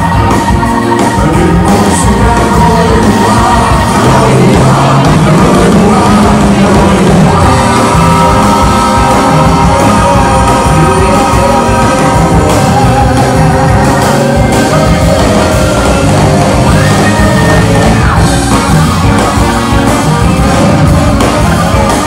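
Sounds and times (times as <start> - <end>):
live soul band: 0.0 - 22.0
men singing: 0.0 - 22.0.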